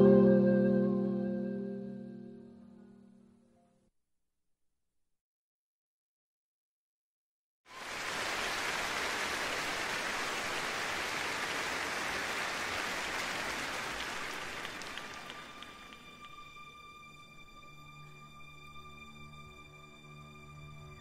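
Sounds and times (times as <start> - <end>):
soft sustained music tones: 0.0 - 3.8, 13.8 - 21.0.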